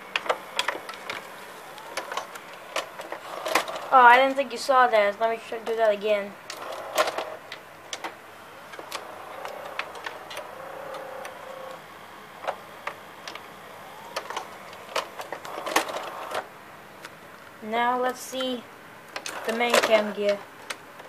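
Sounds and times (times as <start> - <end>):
tape mechanism clicking: 0.0 - 4.4, 5.6 - 17.2, 18.3 - 20.8
small motor whining: 0.0 - 4.5, 6.4 - 16.6.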